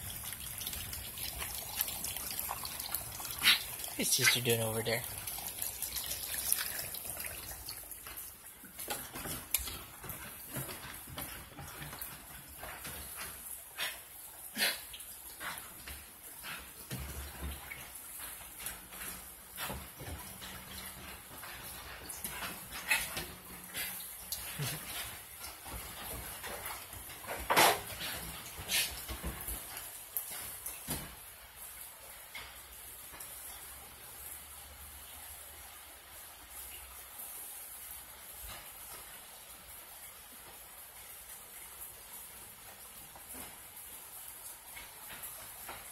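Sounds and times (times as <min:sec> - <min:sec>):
falling rain hiss: 0:00.0 - 0:45.9
dogs scuffling and knocking: 0:08.0 - 0:13.6, 0:15.5 - 0:31.3.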